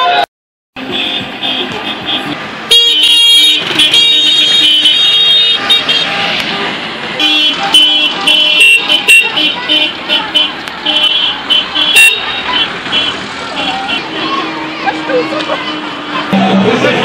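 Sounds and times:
car horns honking: 0:00.0 - 0:17.0
street traffic: 0:00.0 - 0:17.0.

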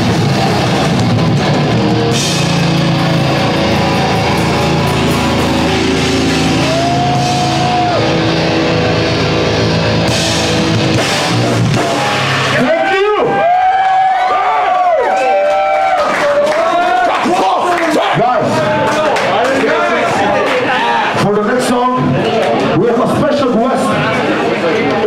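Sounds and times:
distorted electric guitars: 0:00.0 - 0:14.3
band playing live: 0:00.0 - 0:14.5
crowd shouting and cheering: 0:00.0 - 0:25.0
drums: 0:00.0 - 0:25.0.

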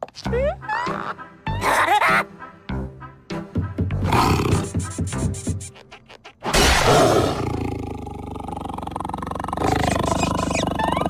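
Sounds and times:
cartoon music with gliding notes: 0:00.1 - 0:06.4
cartoon dog roaring: 0:06.7 - 0:11.0.

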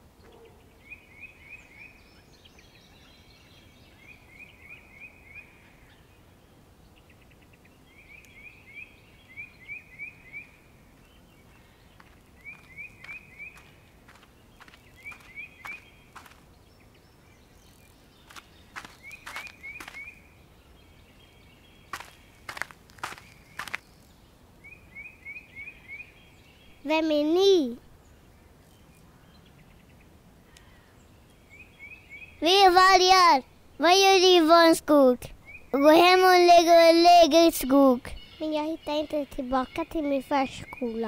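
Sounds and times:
bird chirping: 0:06.9 - 0:27.1.

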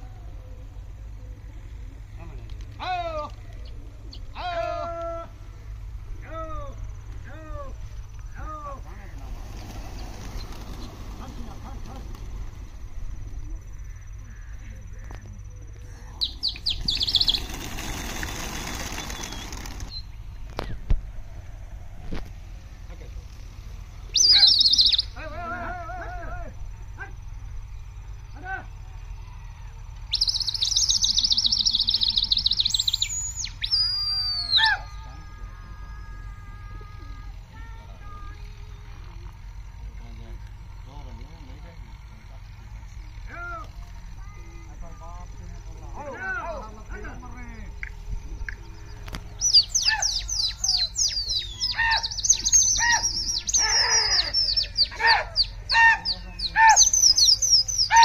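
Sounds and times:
birds chirping and trilling: 0:00.0 - 0:58.0.

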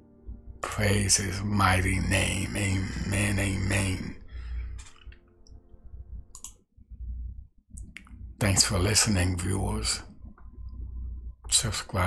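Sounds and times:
faint low room rumble: 0:00.0 - 0:12.0.

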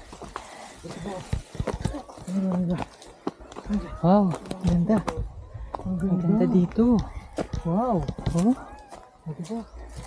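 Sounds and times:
footsteps in sandals on dirt: 0:00.0 - 0:10.0
people's voices: 0:00.3 - 0:10.0.

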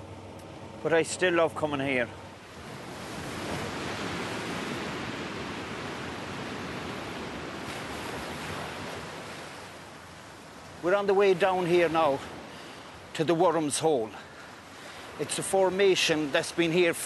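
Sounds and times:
sea surf rushing: 0:00.0 - 0:17.0.

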